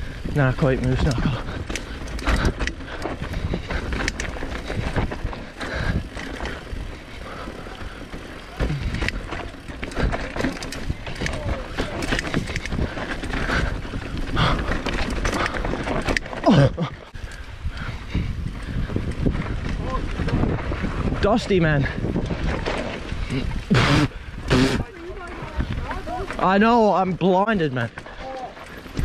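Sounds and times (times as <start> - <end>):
wind rumble on microphone: 0.0 - 26.8
bike rattling and clicking: 0.0 - 29.0
bike tyres rolling over dirt: 0.0 - 29.0.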